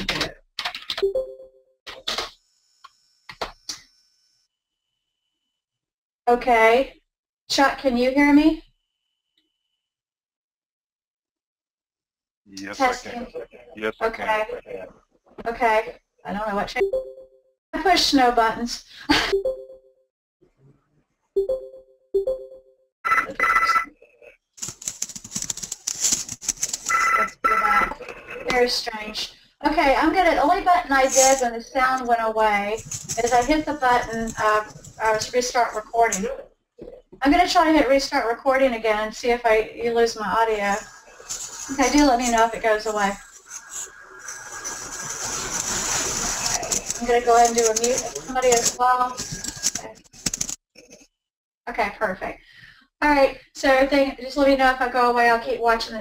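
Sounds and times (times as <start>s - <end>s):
electronic telephone ringtone: 21.4s - 23.9s, 26.9s - 27.8s
hissy line noise: 40.5s - 49.8s.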